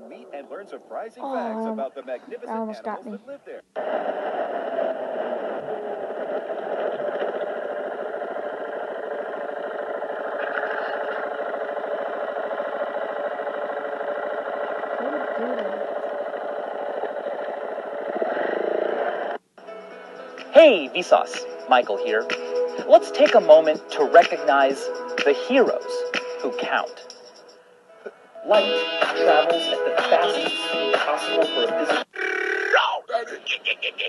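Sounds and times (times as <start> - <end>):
motorcycle engine running: 4.1 - 19.4
music: 19.6 - 32.1.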